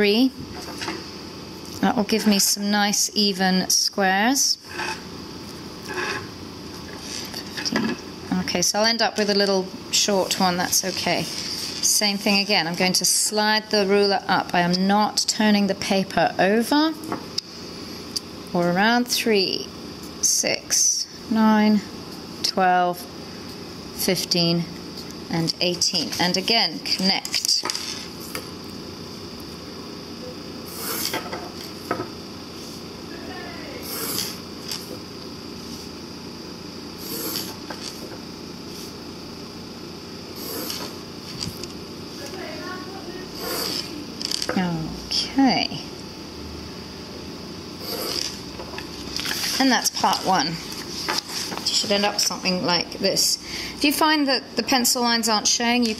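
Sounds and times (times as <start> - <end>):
pencil scraping along ruler: 30.7 - 31.1, 37.0 - 37.6, 40.4 - 40.9, 43.4 - 43.9, 47.8 - 48.3
pencil scratching on paper: 43.4 - 43.9.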